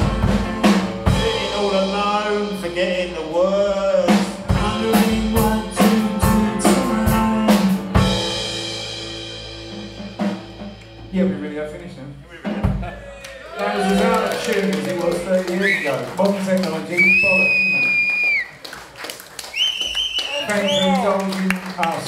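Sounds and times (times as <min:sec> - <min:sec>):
drum strokes: 0:00.0 - 0:02.8.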